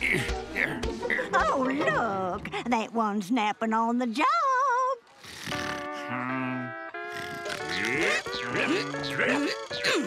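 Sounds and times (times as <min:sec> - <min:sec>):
cartoon background music: 0:00.0 - 0:03.0, 0:05.5 - 0:10.0.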